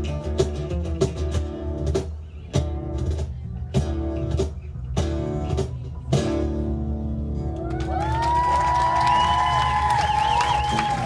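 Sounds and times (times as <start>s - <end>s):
acoustic guitars strummed: 0.0s - 7.5s
acoustic bass guitar line: 0.0s - 11.0s.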